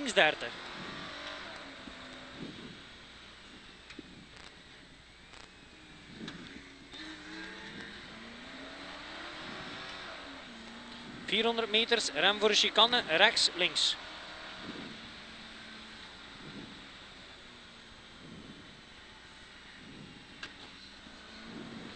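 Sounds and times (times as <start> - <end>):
car engine revving: 0.0 - 21.9.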